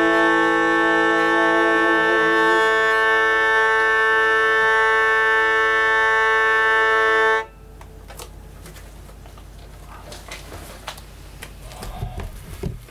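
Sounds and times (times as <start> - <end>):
hurdy-gurdy buzzing drone: 0.0 - 8.2.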